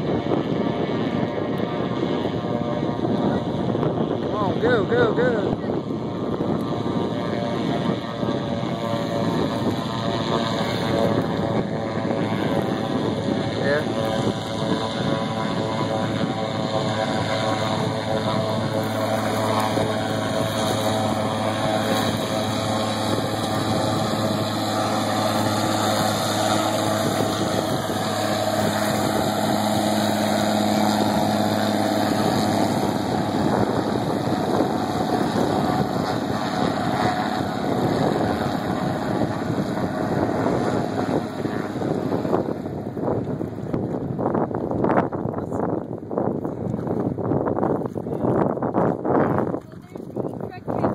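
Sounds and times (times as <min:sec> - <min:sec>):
floatplane engine and propeller droning: 0:00.0 - 0:50.9.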